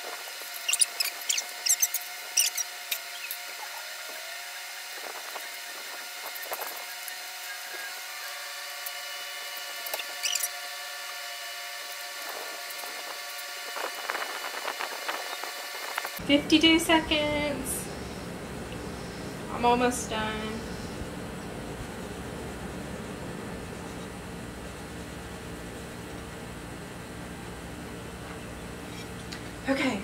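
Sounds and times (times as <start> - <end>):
faint steady hum: 0.0 - 30.0
markers squeaking on shoelaces: 0.6 - 3.8, 9.8 - 10.6.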